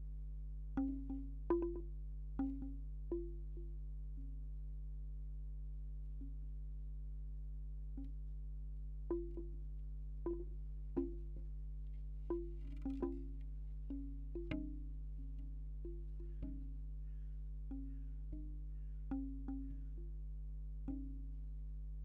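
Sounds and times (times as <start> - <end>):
bamboo wind chimes clacking: 12.3 - 16.9.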